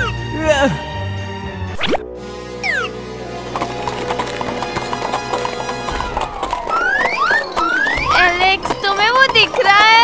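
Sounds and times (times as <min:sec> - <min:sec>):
background music: 0:00.0 - 0:10.0
galloping hoofbeats: 0:03.4 - 0:10.0.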